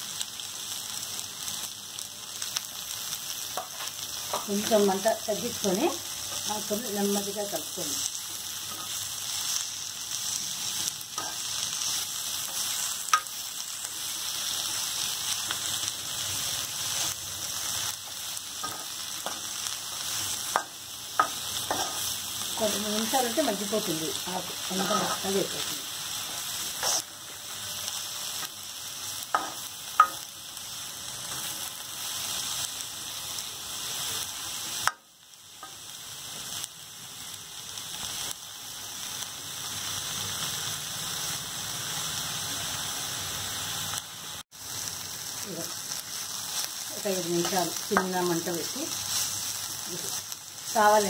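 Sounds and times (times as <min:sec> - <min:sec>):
leaves sizzling in hot oil: 0:00.0 - 0:51.0
steel spatula stirring: 0:18.6 - 0:22.2, 0:26.7 - 0:27.1.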